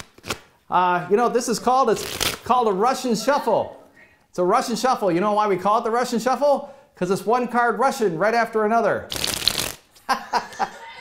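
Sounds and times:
playing cards fluttering: 2.0 - 2.4, 9.1 - 9.9.

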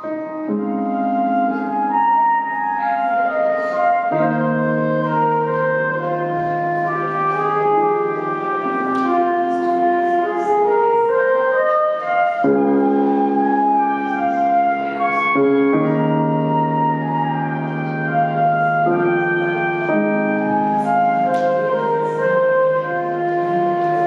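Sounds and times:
synthesizer chords and melody: 0.0 - 24.0.

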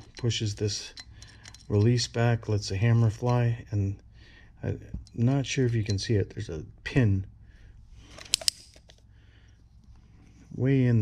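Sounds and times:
sharp metal clicks: 0.0 - 2.2, 8.2 - 9.0.

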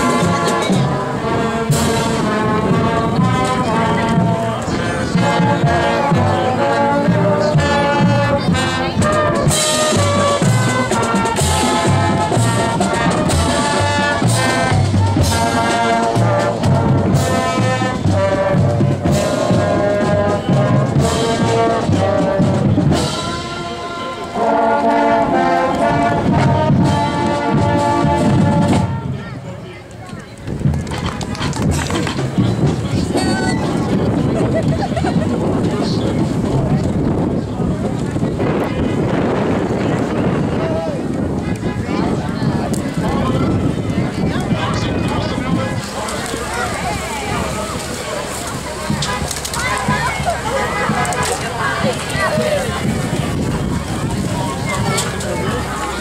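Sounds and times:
marching band playing: 0.0 - 29.8, 30.5 - 56.0
steady noisy background: 0.0 - 56.0.

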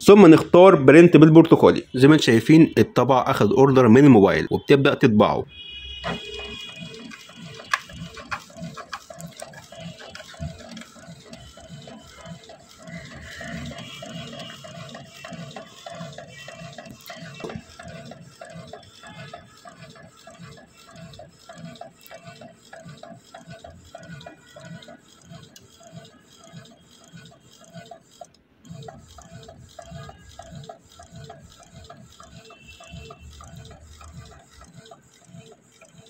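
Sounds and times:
inkjet printer printing: 0.0 - 36.0.

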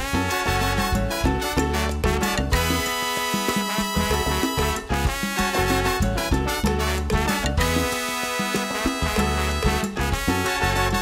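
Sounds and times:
horns: 0.0 - 11.0
latin percussion rhythm: 0.0 - 11.0.

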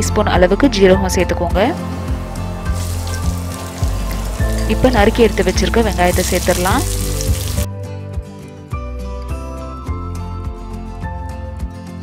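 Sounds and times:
onions sizzling in hot oil: 2.6 - 7.7.

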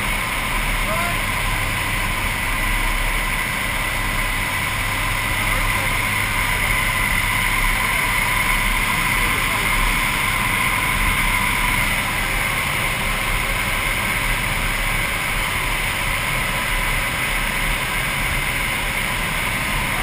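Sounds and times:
plane engines droning: 0.0 - 20.0
steady whine: 0.0 - 20.0.

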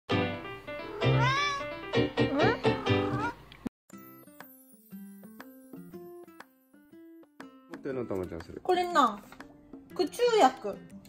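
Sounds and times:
music: 0.1 - 11.0
cat meowing: 0.8 - 3.4.

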